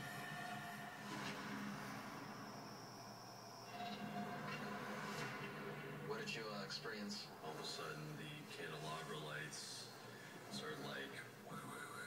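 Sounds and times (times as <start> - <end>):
droning television music: 0.0 - 12.0.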